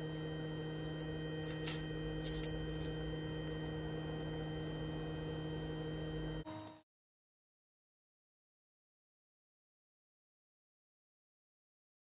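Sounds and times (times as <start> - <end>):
laser engraver humming: 0.0 - 6.7
short metallic clink: 6.4 - 6.8.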